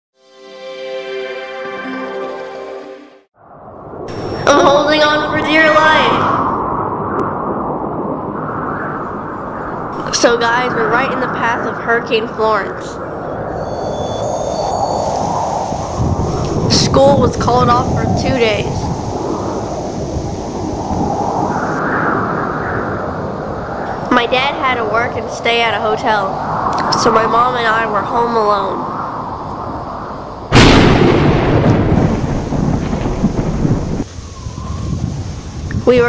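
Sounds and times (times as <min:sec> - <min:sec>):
wind and rain rushing: 0:03.3 - 0:36.0.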